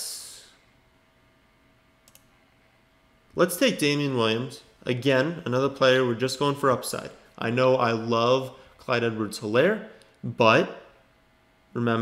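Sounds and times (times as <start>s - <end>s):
computer mouse click: 2.0s - 2.3s.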